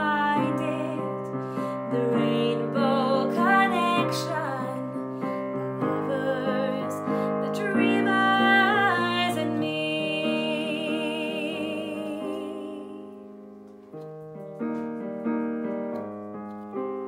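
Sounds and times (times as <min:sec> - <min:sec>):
woman singing with vibrato: 0:00.0 - 0:13.2
digital piano chords: 0:00.0 - 0:17.0.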